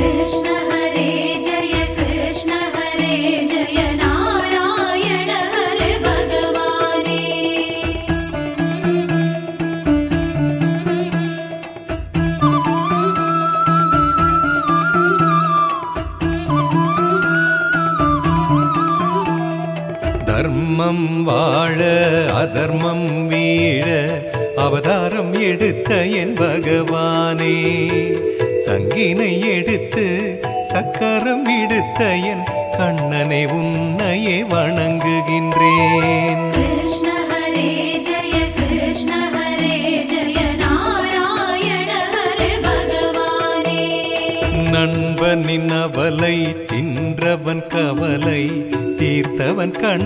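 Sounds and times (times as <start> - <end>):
devotional song music: 0.0 - 50.0
percussion strokes: 0.0 - 50.0
held melodic notes: 30.6 - 40.0.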